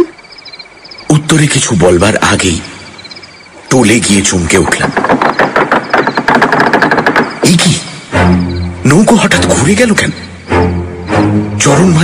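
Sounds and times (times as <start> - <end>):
fast rattle of sharp clicks: 4.6 - 7.7.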